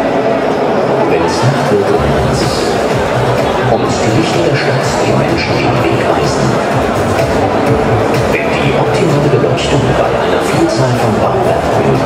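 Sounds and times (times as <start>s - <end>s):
voices echoing in a hall: 0.0s - 12.0s
loud music over speakers: 0.7s - 12.0s.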